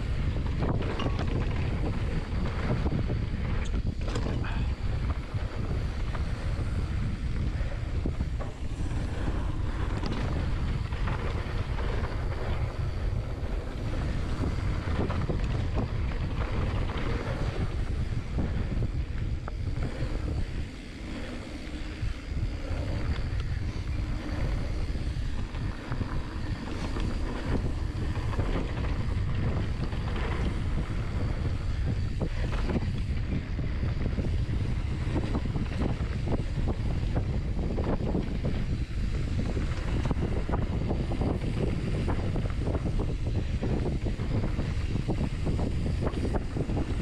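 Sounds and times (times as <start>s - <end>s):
bike rattles and knocks: 0.0s - 47.0s
bike tyres rumbling on dirt: 0.0s - 47.0s
wind buffeting microphone: 0.0s - 47.0s.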